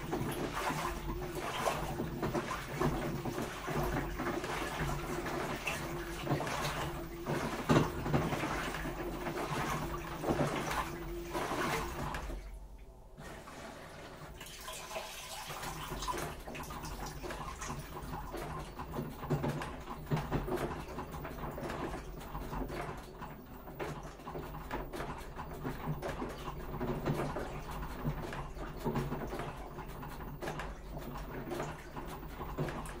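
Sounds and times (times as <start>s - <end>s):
low motor hum: 0.0s - 14.4s
water sloshing in washing machine: 0.0s - 33.0s.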